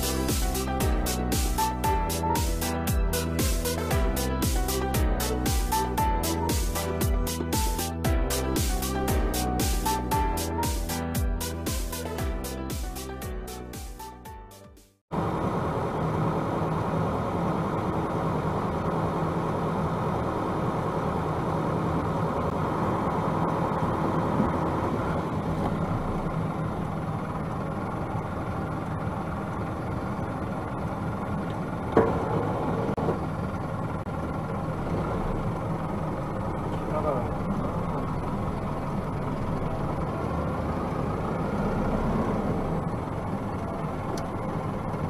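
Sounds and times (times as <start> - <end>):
truck engine idling: 0.0 - 45.0.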